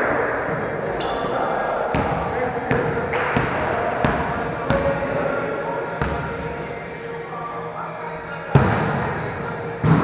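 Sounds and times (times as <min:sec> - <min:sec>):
players chattering: 0:00.0 - 0:10.0.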